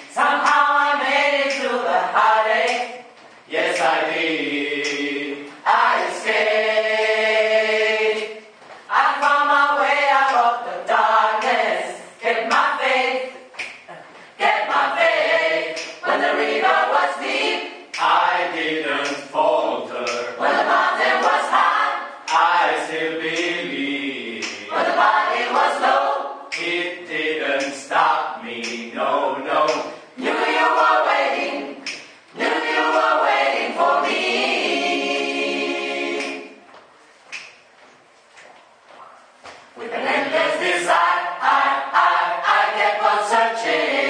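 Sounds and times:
choir singing a cappella: 0.0s - 36.7s, 39.6s - 44.0s.

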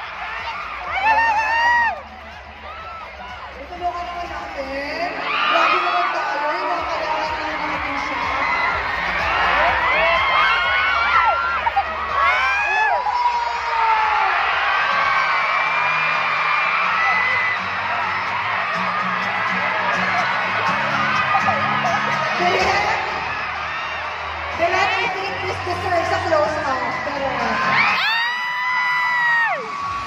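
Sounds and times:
crowd screaming and cheering: 0.0s - 30.0s
music playing: 0.0s - 30.0s.

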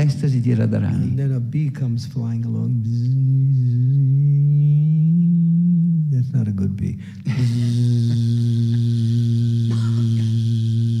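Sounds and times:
man humming a buzzing note: 2.9s - 6.2s, 7.3s - 11.0s.

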